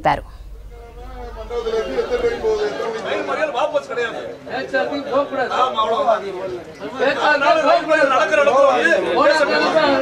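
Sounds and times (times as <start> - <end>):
voices talking: 0.0 - 8.7.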